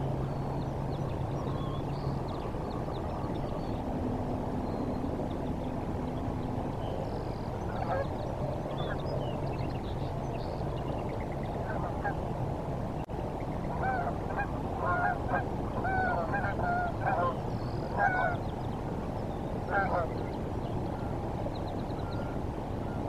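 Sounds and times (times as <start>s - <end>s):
low background rumble: 0.0s - 23.0s
geese honking: 7.7s - 8.1s, 13.8s - 18.4s, 19.7s - 20.2s.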